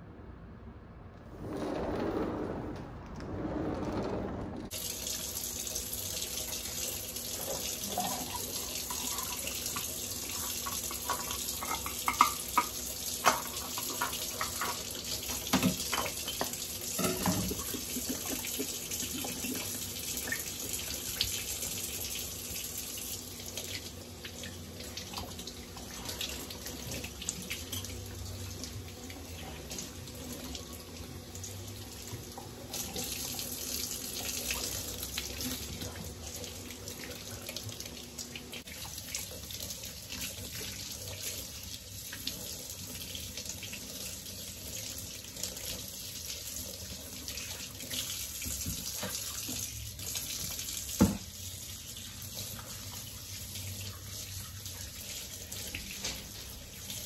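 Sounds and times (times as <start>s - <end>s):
faucet running into steel sink: 4.7s - 57.0s.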